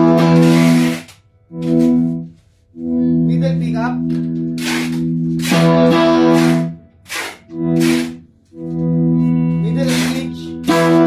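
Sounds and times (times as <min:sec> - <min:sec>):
electric guitar ringing notes: 0:00.0 - 0:11.0.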